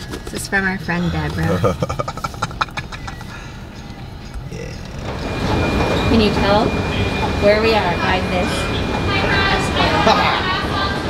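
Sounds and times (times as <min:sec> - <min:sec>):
car engine rumbling: 0:00.0 - 0:11.0
person laughing: 0:01.1 - 0:03.8.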